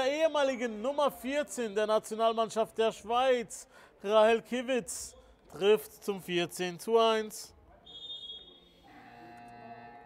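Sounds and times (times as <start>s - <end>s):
high whistle tone: 7.8s - 8.9s
electronic buzzer: 8.9s - 10.0s.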